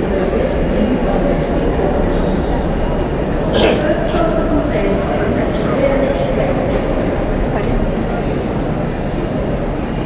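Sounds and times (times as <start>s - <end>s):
crowd chatter: 0.0s - 10.0s
low rumble of trains: 0.0s - 10.0s.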